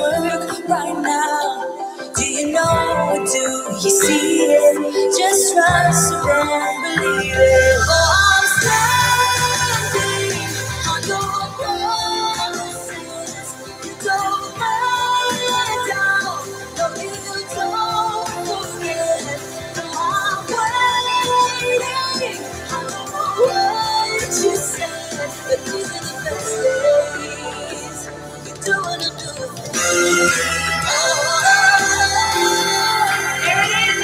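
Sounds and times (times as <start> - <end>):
gospel song with woman singing: 0.0 - 34.0.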